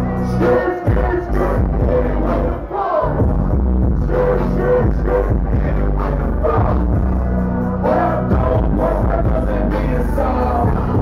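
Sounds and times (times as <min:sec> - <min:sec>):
person rapping: 0:00.0 - 0:03.2, 0:04.0 - 0:07.0, 0:07.8 - 0:11.0.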